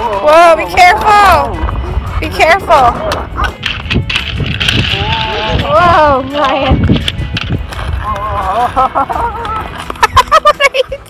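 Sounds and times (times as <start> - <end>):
toy skate wheels rolling on concrete: 2.3 - 11.0.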